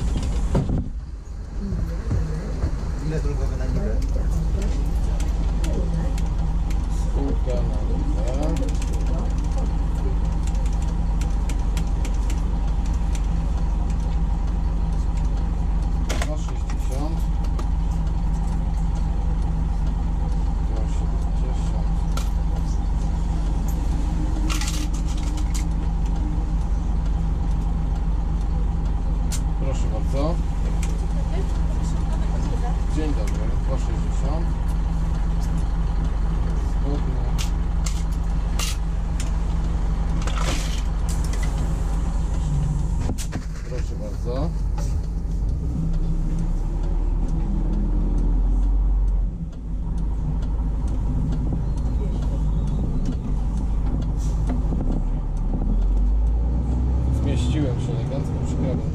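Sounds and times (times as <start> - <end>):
diesel bus engine idling: 0.0 - 58.9.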